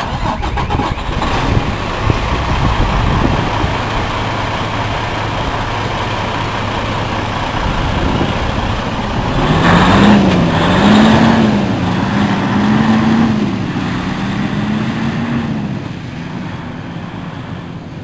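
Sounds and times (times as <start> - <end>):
truck diesel engine: 0.0 - 18.0.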